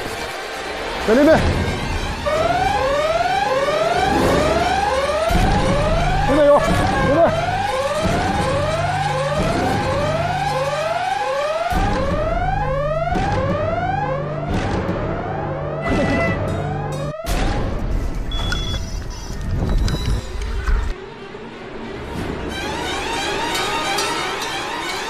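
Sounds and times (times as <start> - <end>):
low bass drone: 0.0 - 18.3
siren-like alarm sweeping upward: 1.0 - 17.8.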